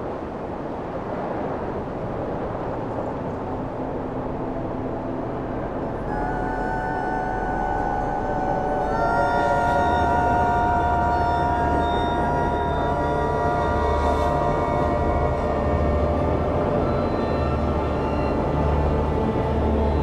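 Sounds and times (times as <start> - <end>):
wind-like rushing noise: 0.0 - 20.0
low drone: 2.7 - 20.0
sustained held chords: 5.4 - 20.0.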